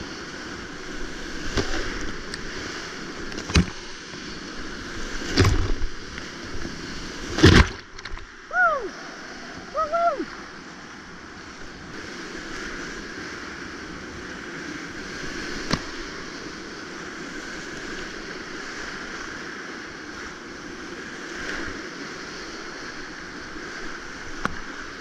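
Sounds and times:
whitewater rapids roaring: 8.4s - 13.6s.

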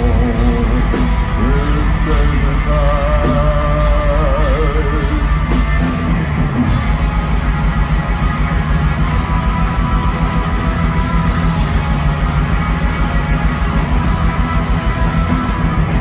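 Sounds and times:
distorted electric guitars: 0.0s - 16.0s
fast steady drumming: 0.0s - 16.0s.

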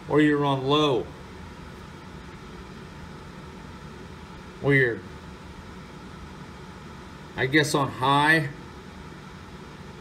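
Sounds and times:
room background hiss: 0.0s - 10.0s.

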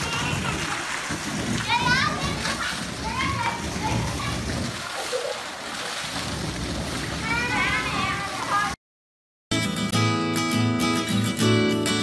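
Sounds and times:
water jet spray falling on water: 0.0s - 8.8s
water splashing in a pool: 0.0s - 8.8s.

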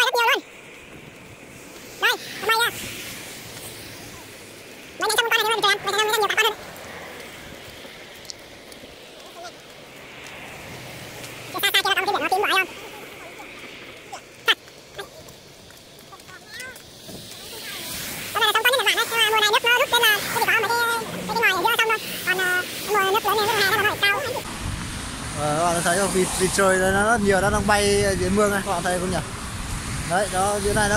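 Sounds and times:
people talking: 0.0s - 0.4s, 2.0s - 2.8s, 5.0s - 6.6s, 11.5s - 15.3s, 16.0s - 16.8s, 17.4s - 24.4s, 25.4s - 29.2s, 30.1s - 30.9s
faint outdoor background: 0.0s - 30.9s.

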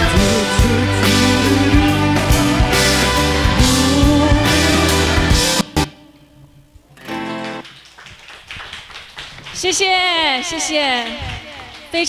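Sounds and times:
guitar chord: 0.0s - 6.4s
faint scattered claps: 7.1s - 12.0s.

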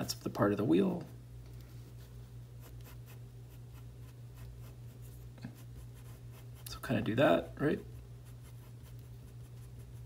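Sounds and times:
pencil scratching on paper: 2.6s - 6.7s, 8.2s - 10.0s.

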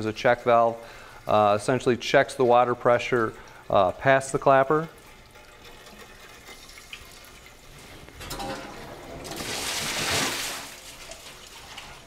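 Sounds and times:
water rushing out of drain: 8.5s - 12.0s.

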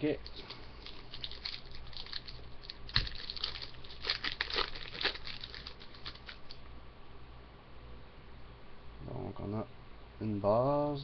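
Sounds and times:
wrapper crinkling and tearing: 0.2s - 6.6s.

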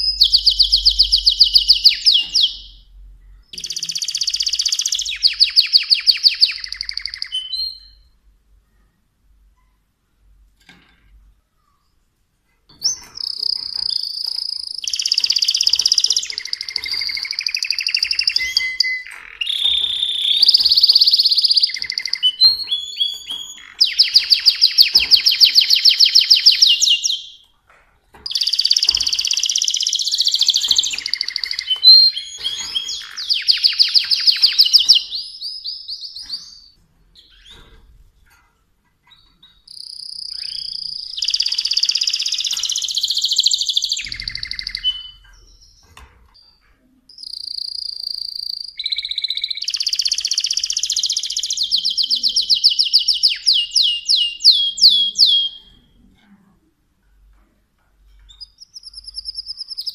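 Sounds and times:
canary singing: 0.0s - 8.2s, 12.7s - 27.5s, 28.2s - 38.0s, 39.0s - 45.9s, 46.8s - 56.1s, 58.2s - 59.9s.

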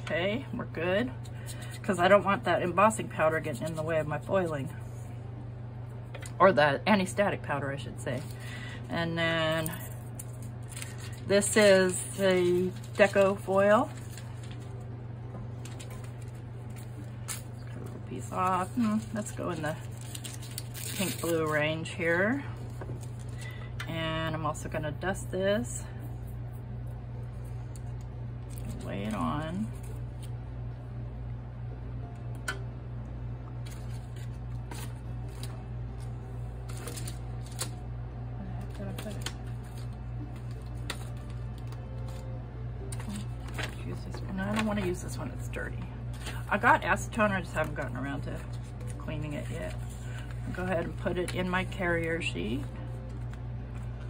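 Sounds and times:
steady low hum: 0.0s - 54.0s
foil sheet crinkling: 9.4s - 14.9s, 15.5s - 23.6s, 33.6s - 37.8s, 38.6s - 42.3s, 42.9s - 45.5s.

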